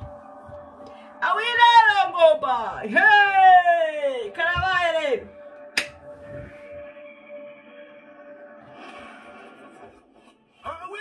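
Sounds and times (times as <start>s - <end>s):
held tone of background music: 0.0s - 11.0s
sharp smack: 5.8s - 6.0s.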